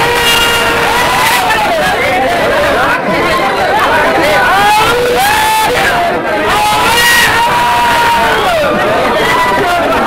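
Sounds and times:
crowd of men talking: 0.0s - 10.0s.

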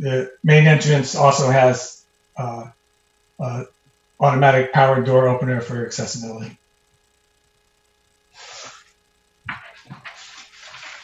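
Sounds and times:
person breathing into microphone: 8.4s - 8.9s.

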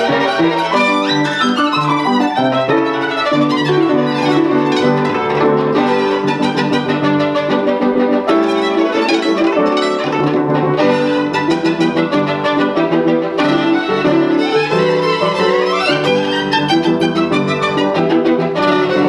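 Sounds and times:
piano repeated notes: 0.0s - 19.0s
violin melody: 0.0s - 19.0s.

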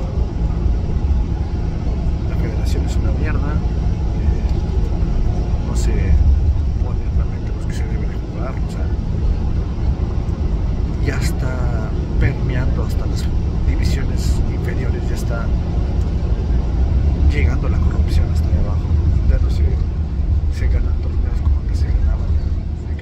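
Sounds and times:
bus engine and tyres rumbling: 0.0s - 23.0s
man talking: 2.2s - 4.8s, 5.5s - 9.1s, 11.0s - 15.6s, 17.2s - 19.9s, 20.5s - 23.0s.

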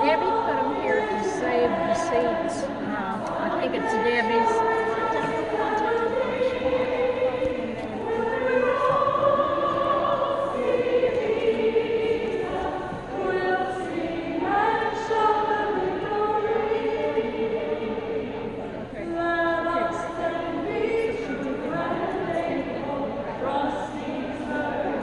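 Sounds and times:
woman leading song: 0.0s - 17.3s
women singing together: 0.0s - 25.0s.

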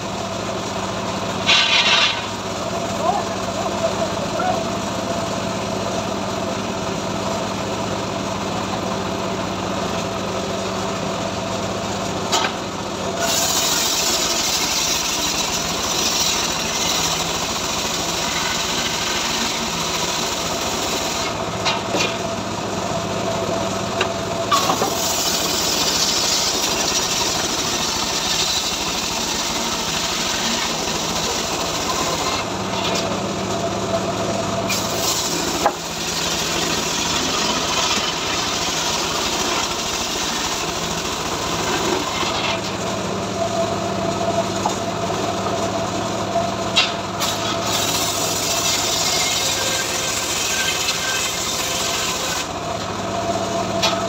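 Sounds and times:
engine running: 0.0s - 50.3s, 51.0s - 54.0s
saw cutting through wood: 13.2s - 22.2s, 24.5s - 33.2s, 34.7s - 42.8s, 46.8s - 52.6s.

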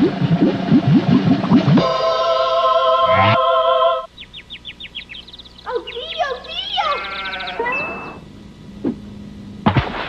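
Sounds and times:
goat bleating: 6.5s - 8.2s.

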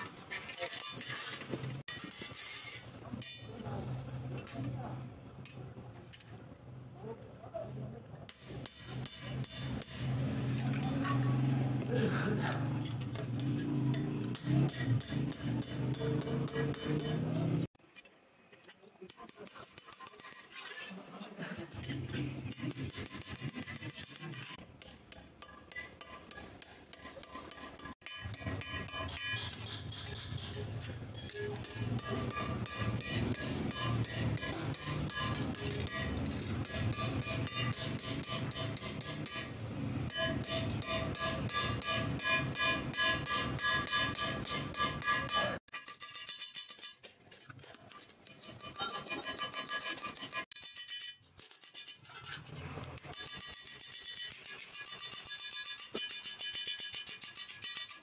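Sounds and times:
hammer tapping steel plate: 13.9s - 17.4s, 24.2s - 45.6s.

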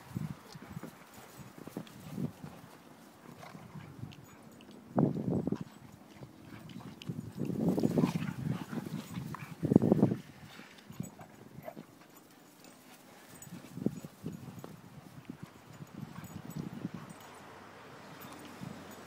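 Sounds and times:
dogs scuffling in snow: 0.0s - 4.1s, 5.7s - 19.0s
paws thudding in snow: 0.0s - 4.4s, 5.4s - 17.5s.

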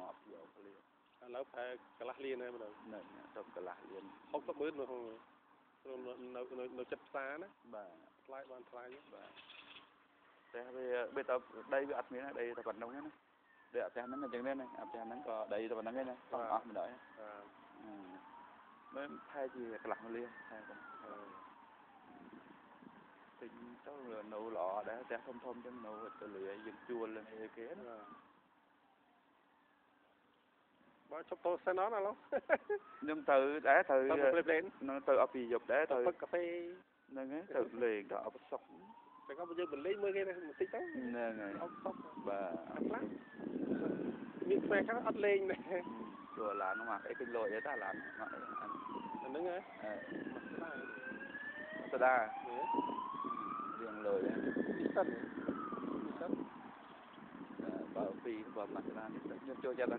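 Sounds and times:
siren wailing: 0.0s - 0.8s, 1.4s - 30.1s, 31.0s - 59.9s.

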